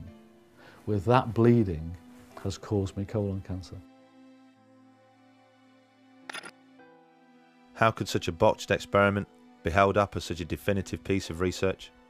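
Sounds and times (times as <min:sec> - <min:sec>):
soft background music chords: 0:00.0 - 0:12.0
man narrating: 0:07.8 - 0:11.9.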